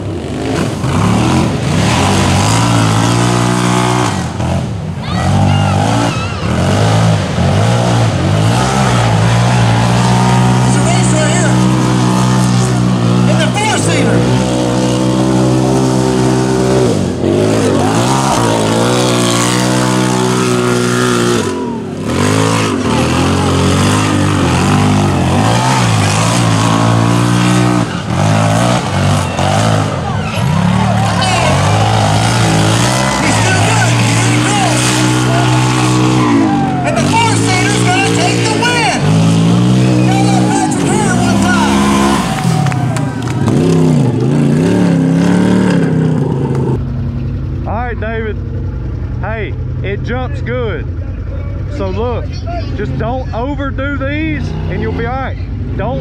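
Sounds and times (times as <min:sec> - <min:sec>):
racing engines revving: 0:00.0 - 0:56.0.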